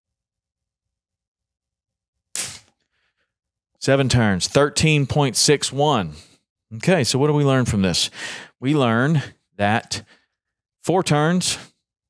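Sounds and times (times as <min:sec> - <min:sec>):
fishing line snapping: 0:02.4 - 0:02.8.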